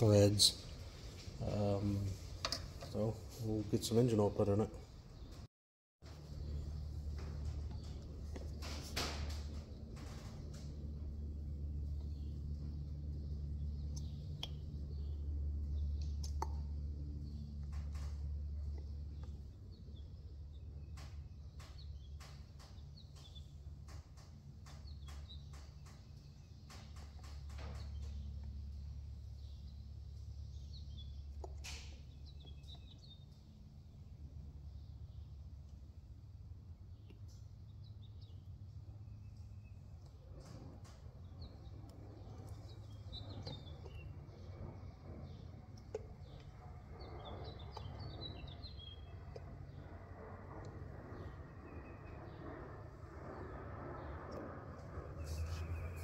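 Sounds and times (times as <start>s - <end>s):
birds chirping: 6.1s - 33.7s, 36.9s - 56.0s
low steady hum: 6.1s - 56.0s.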